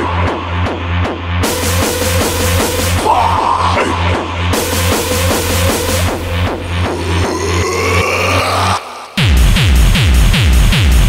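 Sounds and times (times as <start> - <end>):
dark techno track: 0.0 - 11.0.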